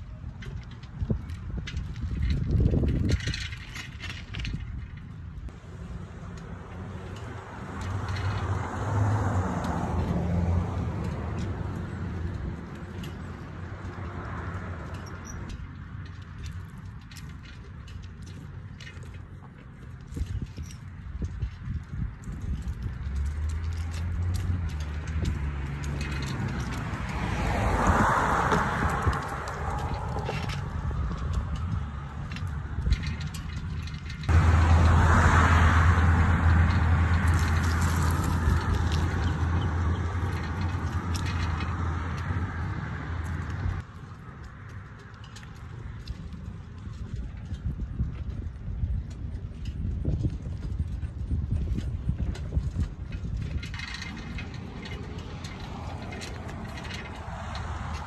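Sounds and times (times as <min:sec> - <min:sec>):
wind rumble on microphone: 0:00.0 - 0:58.0.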